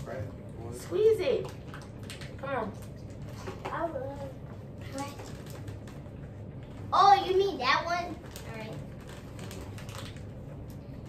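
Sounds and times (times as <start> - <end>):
low room hum: 0.0 - 11.0
faint clicks and rustling of hands: 1.4 - 6.9.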